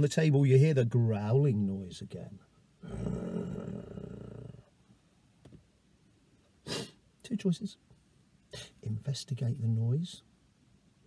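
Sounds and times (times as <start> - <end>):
low rough growl: 2.8 - 4.7.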